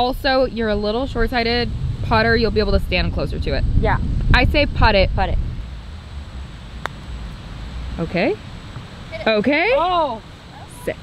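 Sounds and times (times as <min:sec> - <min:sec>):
wind rumble on microphone: 0:00.0 - 0:11.0
putter striking golf ball: 0:06.8 - 0:07.1.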